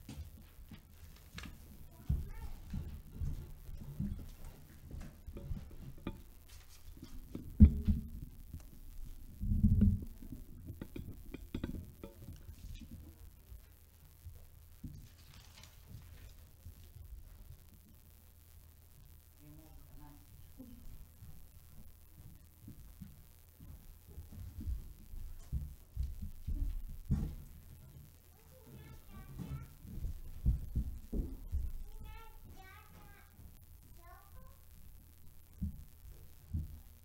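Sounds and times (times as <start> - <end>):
microphone handling thumps: 0.0 - 13.6, 20.6 - 28.1, 29.5 - 32.2.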